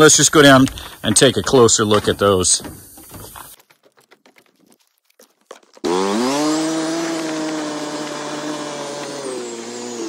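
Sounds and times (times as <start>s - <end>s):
quad bike engine starting: 5.8s - 10.0s.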